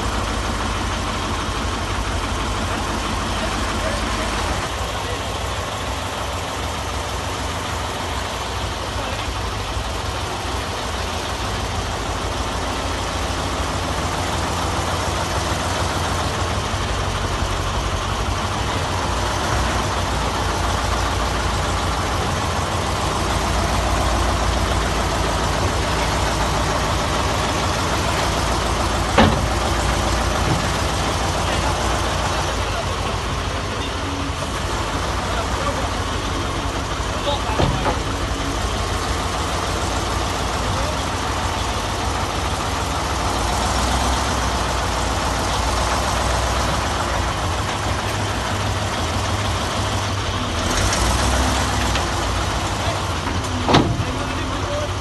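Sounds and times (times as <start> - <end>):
truck engine idling: 0.0 - 55.0
sharp knocks: 29.1 - 29.8.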